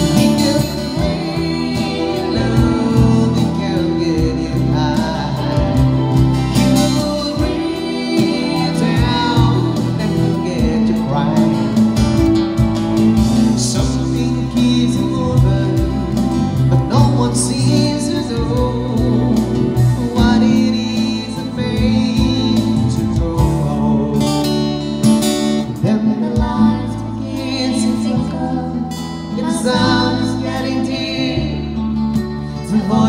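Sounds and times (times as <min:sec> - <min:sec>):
acoustic guitar playing: 0:00.0 - 0:33.0.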